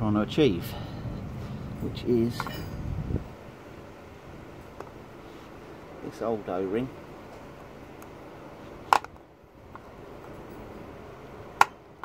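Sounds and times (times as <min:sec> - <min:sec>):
low background hiss: 0:00.0 - 0:12.0.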